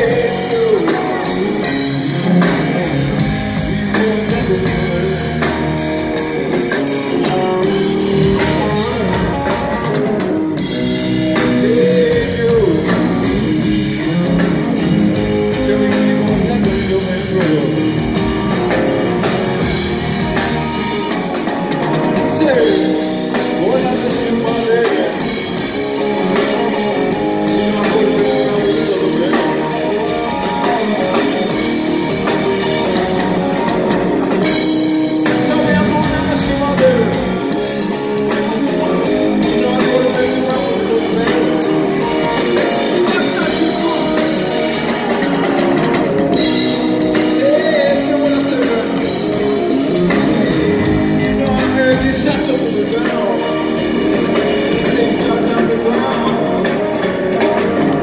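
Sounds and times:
drum kit with cymbals: 0.0 - 58.0
electric guitar lead: 0.0 - 58.0.

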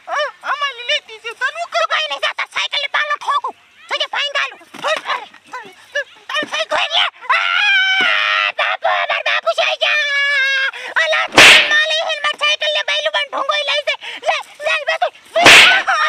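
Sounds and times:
high-pitched voices shouting: 15.4 - 16.0.

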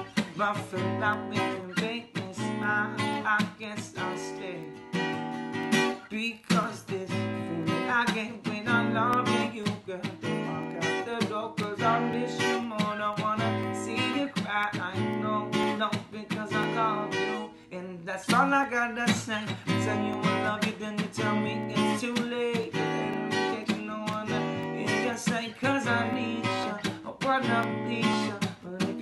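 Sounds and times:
acoustic guitar strummed: 0.0 - 29.0
man singing: 0.0 - 29.0.

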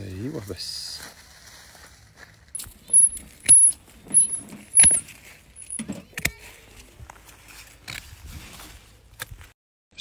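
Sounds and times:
high thin ring: 2.6 - 5.0, 5.6 - 5.8.

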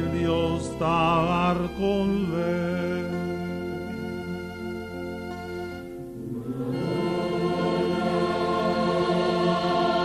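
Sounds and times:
choir singing a hymn: 0.0 - 10.0
hymn accompaniment: 0.0 - 10.0.

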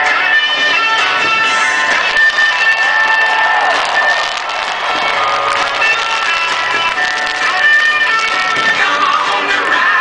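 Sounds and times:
music with long held notes: 0.0 - 10.0
stadium crowd cheering and applauding: 0.0 - 10.0.

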